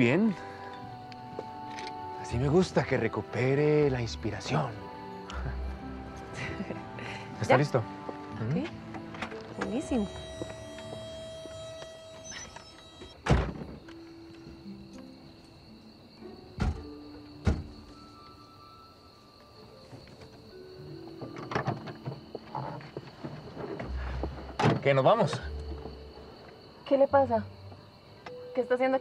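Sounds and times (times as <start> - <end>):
soft background music: 0.0 - 29.0.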